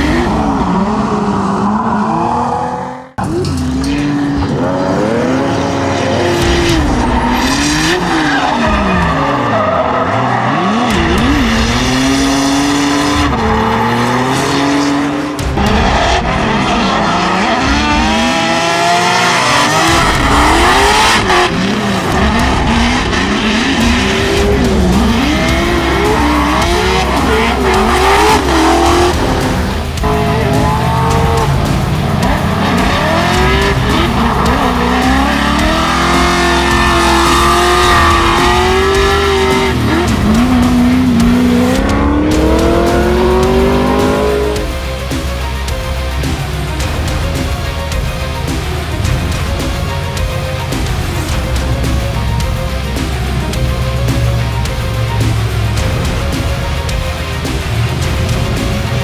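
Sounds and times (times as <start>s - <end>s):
car engines revving: 0.0s - 59.0s.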